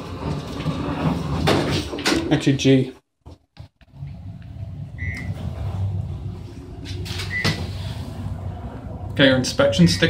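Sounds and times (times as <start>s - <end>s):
elevator doors sliding shut: 0.0s - 2.2s, 4.0s - 9.0s
steady elevator hum: 3.9s - 10.0s.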